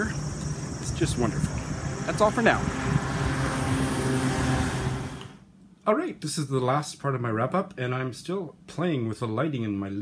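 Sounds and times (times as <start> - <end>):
street traffic engine hum: 0.0 - 5.4
man speaking: 0.8 - 2.8.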